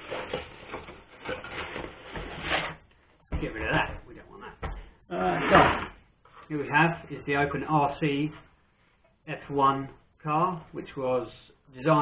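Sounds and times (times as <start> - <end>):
cardboard rubbing and scraping: 0.0 - 2.8.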